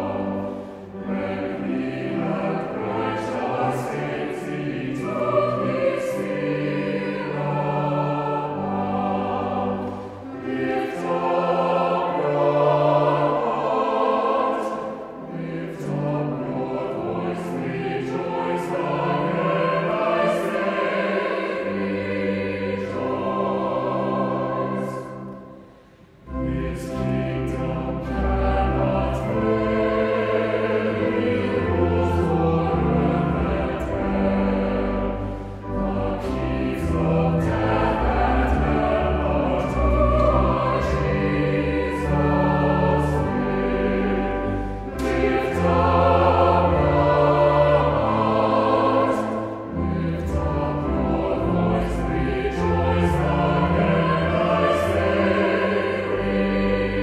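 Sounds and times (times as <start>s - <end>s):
church choir singing a hymn: 0.0s - 57.0s.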